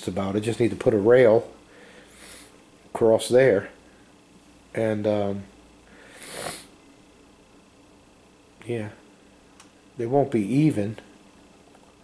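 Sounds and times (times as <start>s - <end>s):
person breathing: 1.6s - 2.6s, 5.8s - 6.7s.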